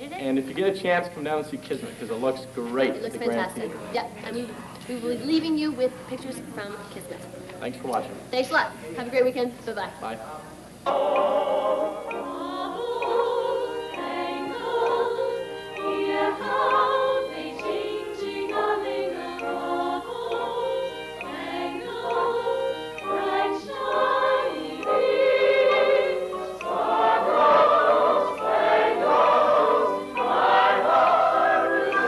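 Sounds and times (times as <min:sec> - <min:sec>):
musical theatre singing: 0:10.8 - 0:32.0.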